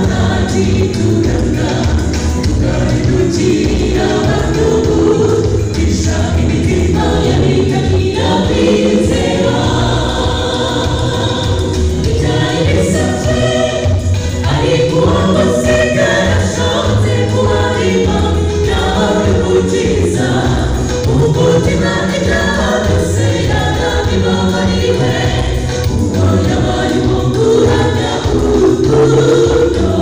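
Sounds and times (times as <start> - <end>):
choir singing gospel: 0.0 - 30.0.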